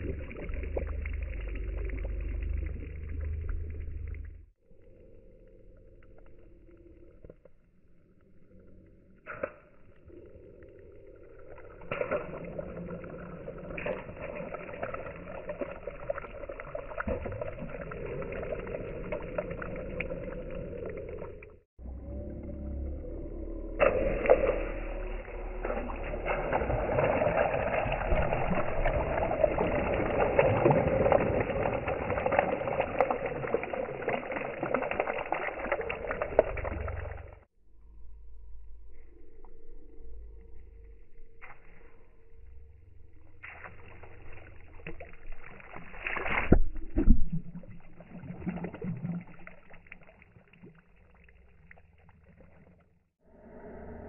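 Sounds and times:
low steady rumble: 0:00.0 - 0:09.2, 0:17.2 - 0:34.3, 0:35.6 - 0:45.4
water drops pattering on lake: 0:09.2 - 0:21.5, 0:23.8 - 0:37.4, 0:43.4 - 0:52.9.

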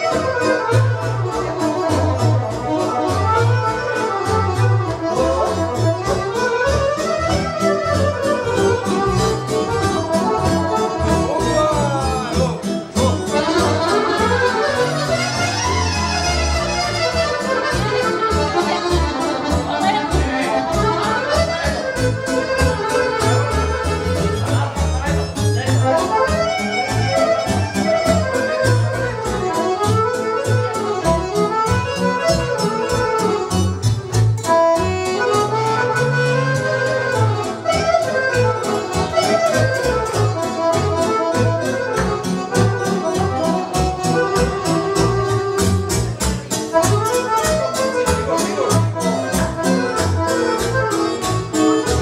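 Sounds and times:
accordion playing dance tune: 0:00.0 - 0:52.0.

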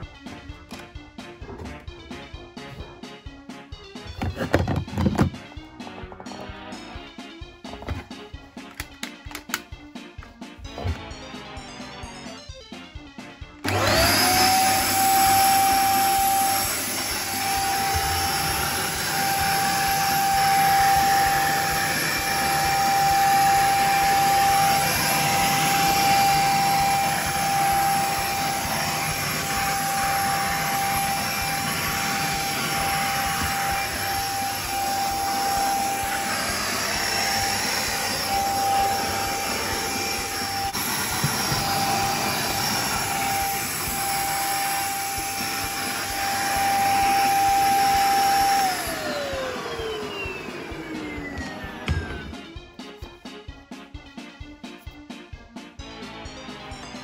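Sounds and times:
vacuum cleaner running: 0:04.0 - 0:53.2
vacuum motor winding down: 0:13.6 - 0:52.6.

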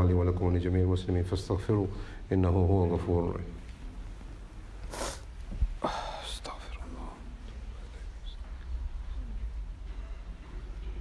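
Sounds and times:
quiet low hum: 0:00.0 - 0:11.0
faint murmur: 0:03.6 - 0:11.0
person whispering close: 0:04.9 - 0:09.4.

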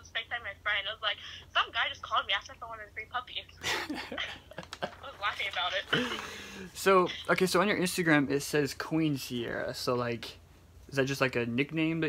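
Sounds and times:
girl talking through phone speaker: 0:00.0 - 0:03.6, 0:05.0 - 0:05.9
girl laughing breathily: 0:03.6 - 0:04.9, 0:05.9 - 0:06.6.

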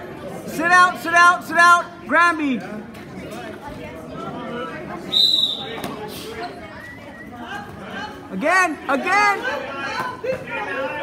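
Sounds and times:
echoing voices and chatter: 0:00.0 - 0:11.0.

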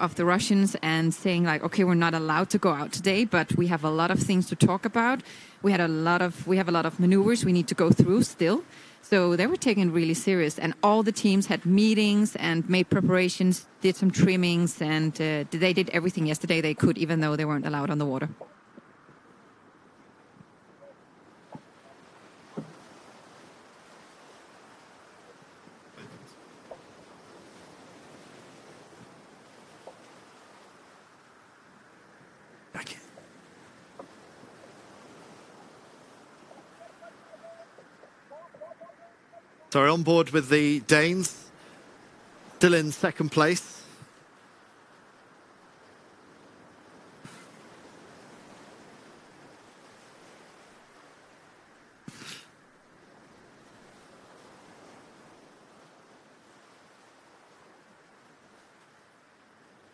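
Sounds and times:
wind and water noise: 0:00.0 - 0:59.9.

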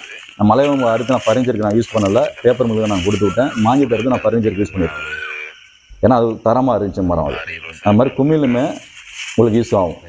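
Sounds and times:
scratchy rubbing noise: 0:00.0 - 0:03.9, 0:08.4 - 0:10.0
man speaking: 0:00.0 - 0:10.0.

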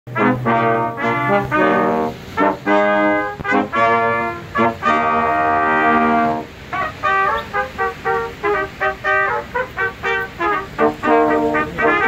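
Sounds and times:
brass quartet playing a carol: 0:00.1 - 0:12.0.

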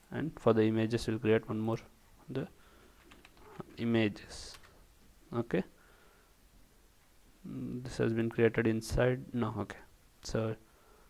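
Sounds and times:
faint keyboard keystrokes: 0:03.0 - 0:03.8.

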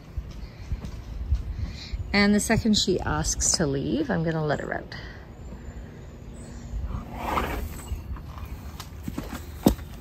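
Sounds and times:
horse blowing out breath: 0:06.9 - 0:08.0.

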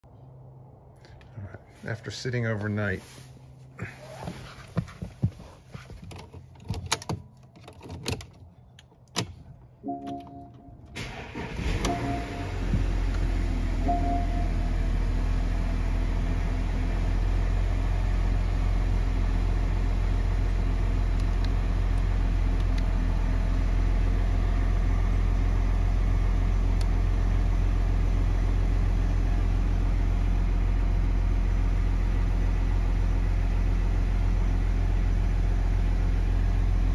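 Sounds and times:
car engine cranking and idling: 0:01.0 - 0:36.9.

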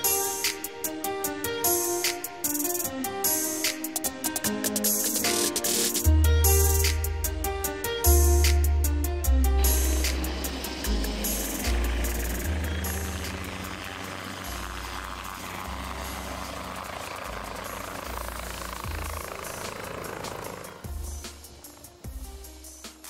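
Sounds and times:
electronic music with heavy bass: 0:03.6 - 0:23.0
helicopter turbine and rotor: 0:09.6 - 0:23.0.

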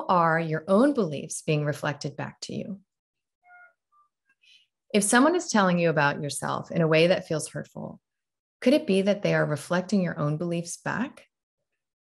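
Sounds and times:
woman speaking: 0:00.0 - 0:02.9, 0:04.9 - 0:08.0, 0:08.6 - 0:11.3.

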